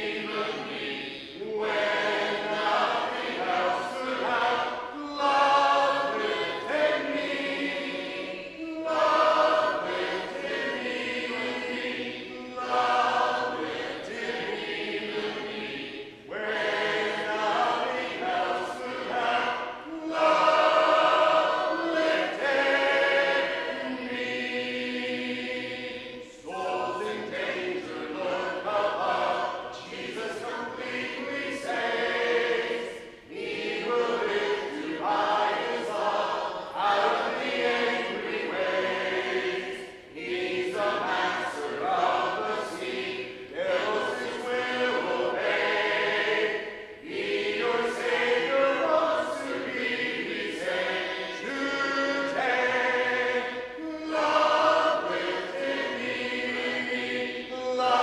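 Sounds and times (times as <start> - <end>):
congregation singing a hymn: 0.0 - 58.0.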